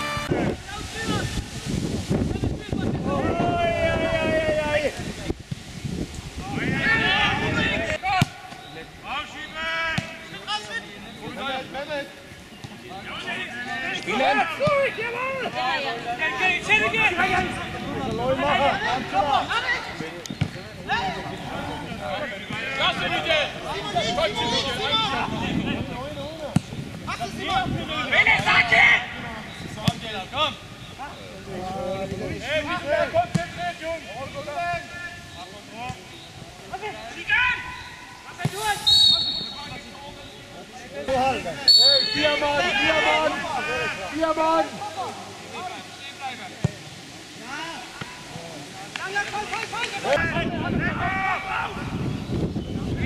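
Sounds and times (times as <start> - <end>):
wind rumble on microphone: 0.0 - 8.0, 17.3 - 19.2, 23.0 - 28.2, 29.1 - 32.5, 50.2 - 53.0
players shouting: 3.0 - 5.0, 6.4 - 25.6, 27.1 - 30.6, 36.6 - 46.6, 47.4 - 52.0.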